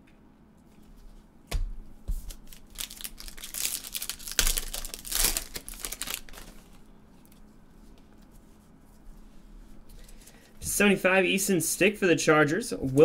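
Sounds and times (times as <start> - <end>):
plastic crinkling and rustling: 2.1 - 8.4.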